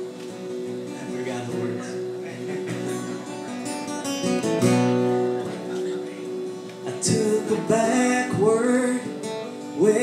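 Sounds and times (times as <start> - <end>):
strummed acoustic guitar: 0.0 - 10.0
man singing: 6.8 - 10.0.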